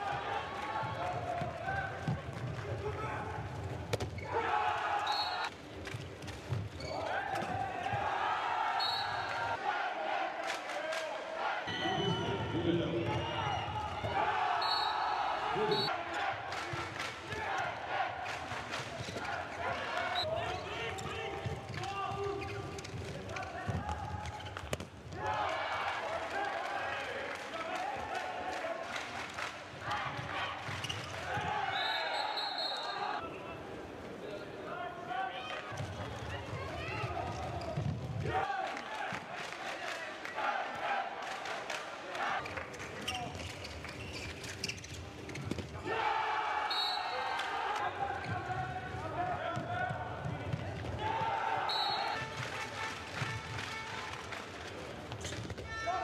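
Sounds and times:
players shouting: 4.2 - 5.5, 6.8 - 12.2, 13.1 - 18.4, 29.8 - 33.4, 45.8 - 52.8
players shouting short calls: 13.2 - 16.3
running footsteps on court floor: 48.0 - 55.7.

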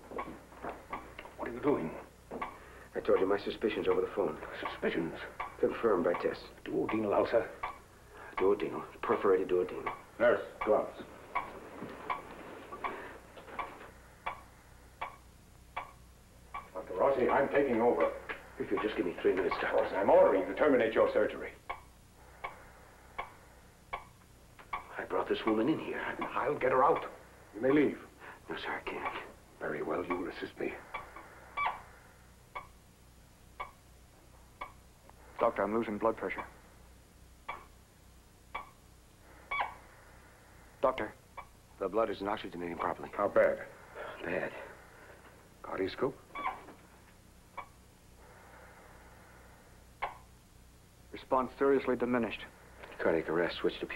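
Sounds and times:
faint low hum: 0.0 - 53.9
patient monitor beeps: 1.9 - 20.2, 23.2 - 27.3, 37.4 - 37.8
heart monitor beeping: 9.9 - 19.8.

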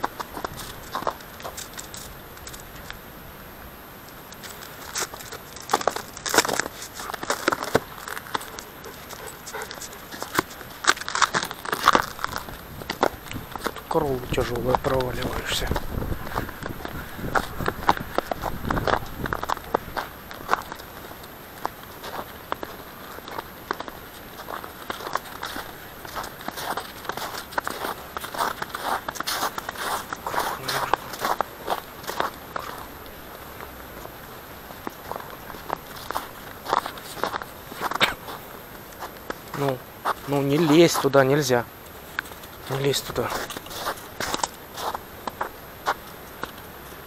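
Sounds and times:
dog paws breaking through snow: 0.0 - 3.0, 4.3 - 47.0
footsteps crunching through snow: 0.0 - 3.0, 4.3 - 47.0.

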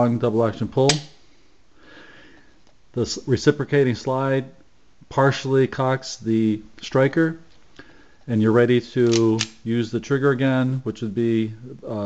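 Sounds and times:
soft breath through nose: 1.2 - 2.6, 7.7 - 8.3.

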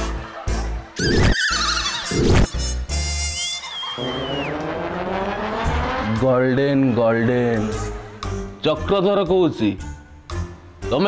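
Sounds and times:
slowly rising tone: 3.8 - 8.6.

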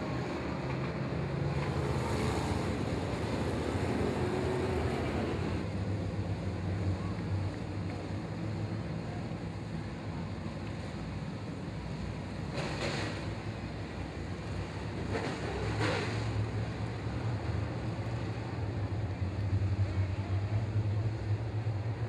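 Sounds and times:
race car engines droning: 0.0 - 22.0.

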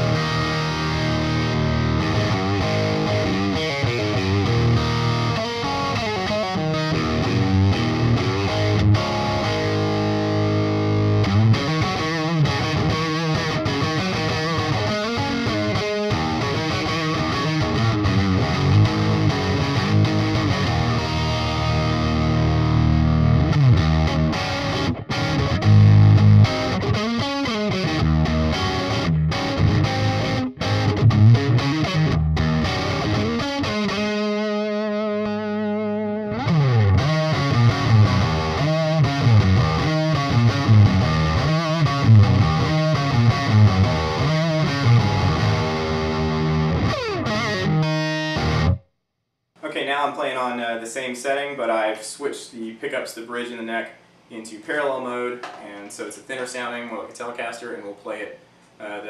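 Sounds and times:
distorted electric guitar riffs: 0.0 - 48.9.

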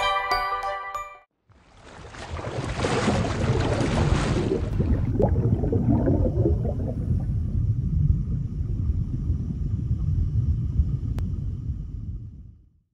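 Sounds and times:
underwater bubbling: 1.6 - 12.5
deep underwater rumble: 2.3 - 12.9.

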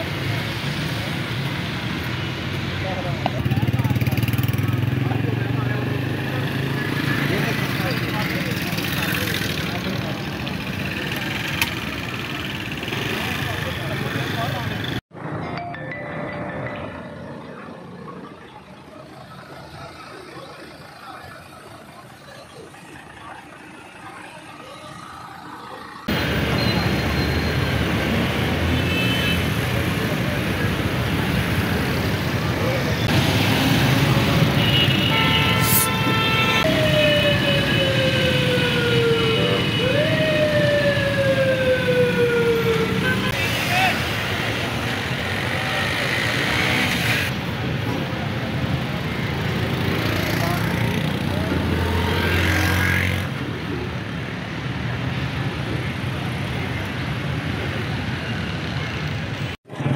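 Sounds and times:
busy road traffic: 0.0 - 59.9
vehicle horn: 28.8 - 29.6, 34.5 - 36.7
siren wailing: 35.6 - 43.2.

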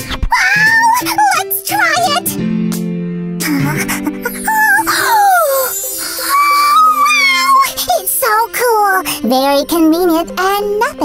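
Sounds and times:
background music: 0.0 - 11.0
high cartoonish vocal sound: 3.4 - 8.9.

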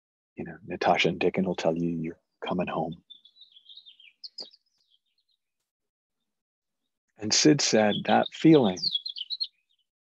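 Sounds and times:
faint bird chirping: 0.4 - 5.6, 6.2 - 10.0.

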